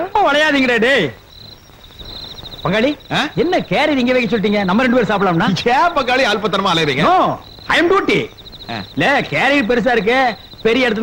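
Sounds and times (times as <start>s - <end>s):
crickets chirping: 0.0s - 11.0s
man speaking: 2.6s - 11.0s.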